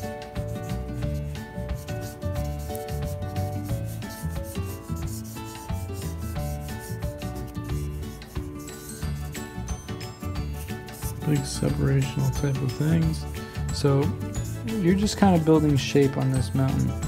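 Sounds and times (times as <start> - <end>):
background music: 0.0 - 17.0
marker scribbling on paper: 0.0 - 17.0.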